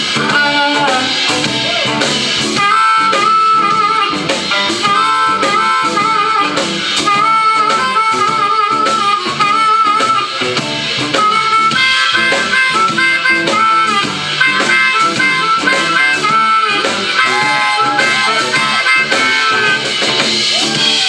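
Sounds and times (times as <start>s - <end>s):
backing band with drums: 0.0s - 21.0s
blues harmonica solo: 0.0s - 21.0s.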